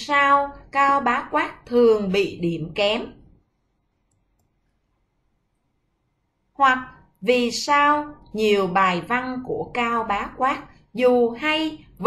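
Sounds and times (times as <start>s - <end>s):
person speaking: 0.0s - 3.3s
computer mouse clicks: 4.0s - 4.6s.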